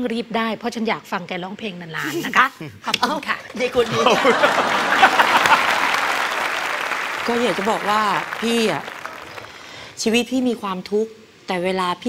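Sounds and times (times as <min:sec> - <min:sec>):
voices over clapping: 0:02.9 - 0:09.7
audience applauding: 0:03.7 - 0:09.8.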